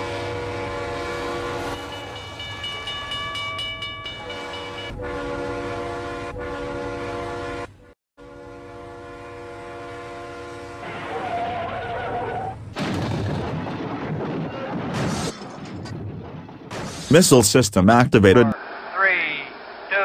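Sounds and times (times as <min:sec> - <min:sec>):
toy train horn blasts: 0:00.0 - 0:02.2, 0:04.2 - 0:11.2.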